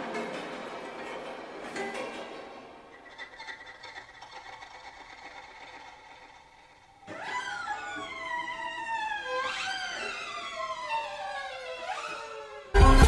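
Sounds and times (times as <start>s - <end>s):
background music: 12.7s - 13.0s.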